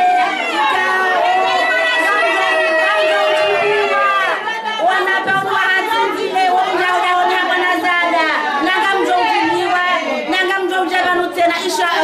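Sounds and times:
women singing and talking: 0.0 - 12.0.

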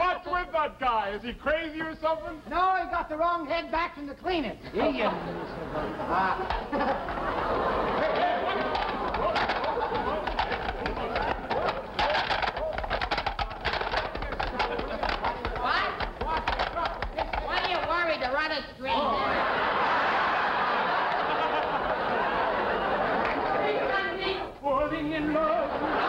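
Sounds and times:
studio audience laughing: 5.0 - 12.0, 19.0 - 24.2, 25.5 - 26.0.

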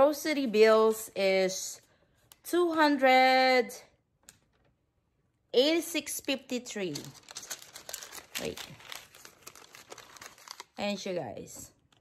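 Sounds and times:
paper receipt crinkling: 6.7 - 11.2.

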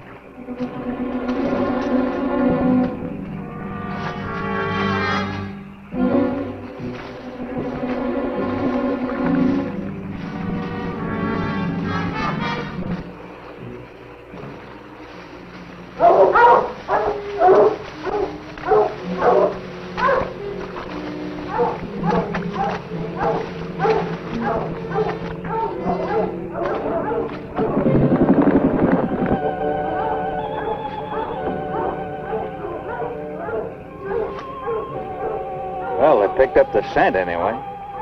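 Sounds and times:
orchestral film score: 0.0 - 38.0
dogs barking: 15.9 - 28.0, 29.5 - 36.7.

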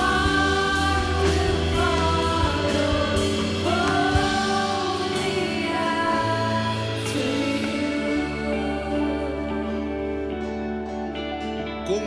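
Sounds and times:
person singing with backing vocals: 0.0 - 10.6
band with guitar keyboard and drums: 0.0 - 12.0.

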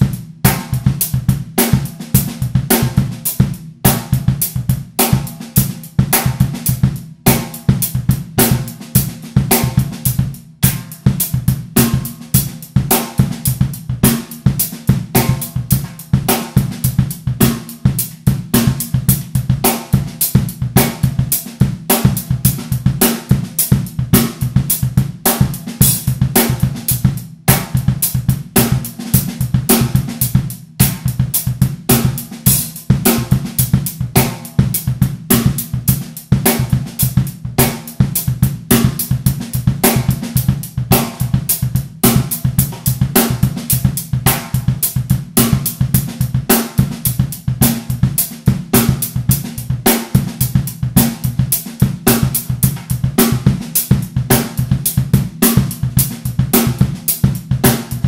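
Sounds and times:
drum kit funk groove: 0.0 - 58.0.

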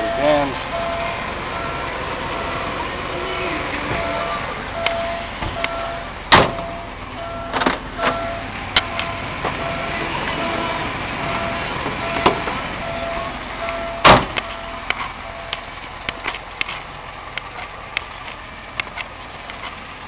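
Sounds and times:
car warning chime beeping: 0.0 - 16.2
sharp clunks and clicks: 4.8 - 6.7, 7.5 - 8.2.

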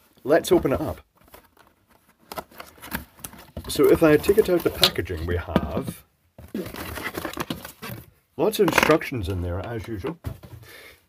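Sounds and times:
packaging crinkling and rustling: 0.5 - 5.4, 6.5 - 9.1.

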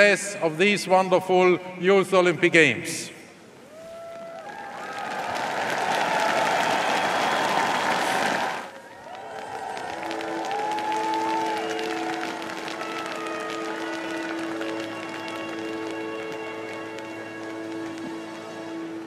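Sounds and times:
crowd applauding and cheering: 3.7 - 19.0
sustained music notes: 9.6 - 19.0.

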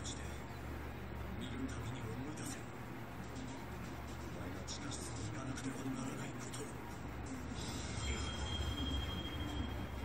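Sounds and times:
thin steady high tone: 7.0 - 10.0.

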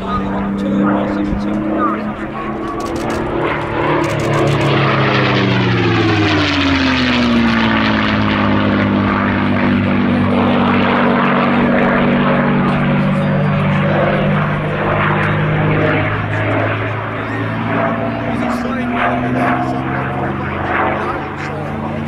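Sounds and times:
propeller aircraft engine passing: 0.0 - 22.0.

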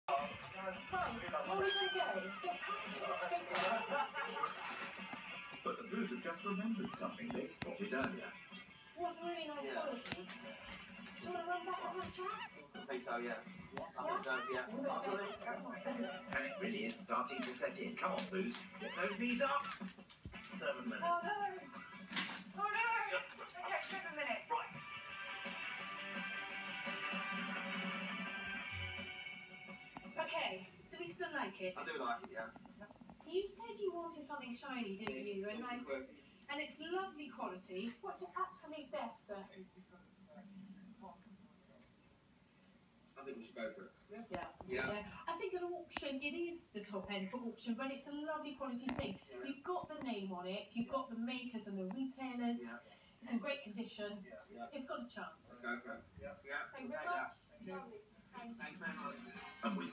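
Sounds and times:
television talk: 0.0 - 59.9
background music: 0.1 - 32.0, 58.4 - 59.9
kittens mewing: 1.4 - 3.0, 11.7 - 13.0, 13.9 - 17.6
kitten mewing: 1.5 - 2.5, 11.8 - 12.9.

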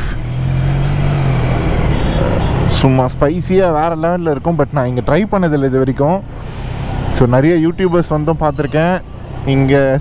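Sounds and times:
motorcycle and street traffic rumble: 0.0 - 10.0
man talking: 2.2 - 6.3, 7.1 - 10.0.

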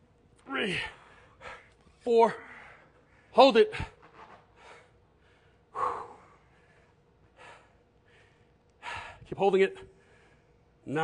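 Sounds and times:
faint breaths: 0.7 - 10.9.

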